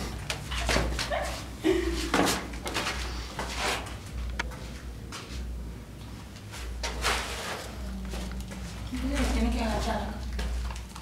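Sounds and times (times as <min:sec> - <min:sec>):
rustling and handling noise: 0:00.0 - 0:11.0.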